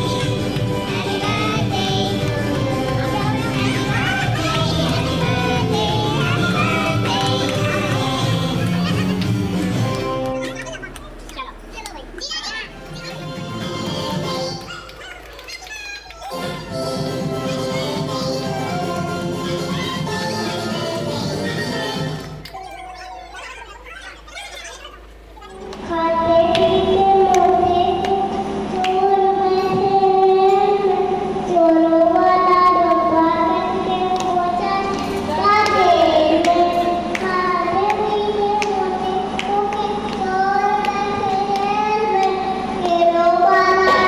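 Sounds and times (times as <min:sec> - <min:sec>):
children chattering: 0:03.0 - 0:05.5, 0:10.1 - 0:19.0, 0:22.5 - 0:25.8
child's high-pitched call: 0:22.6 - 0:24.9
boy singing into microphone: 0:25.7 - 0:44.0.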